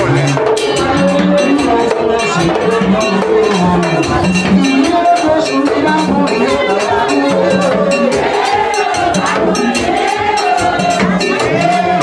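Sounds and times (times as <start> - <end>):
drums keeping steady beat: 0.0 - 12.0
group singing: 0.0 - 12.0
struck metal bell: 1.0 - 11.8.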